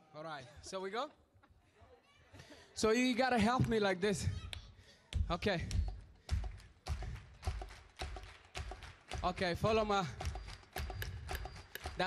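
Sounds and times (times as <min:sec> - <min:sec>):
fast percussive knocking beat: 0:05.2 - 0:12.0.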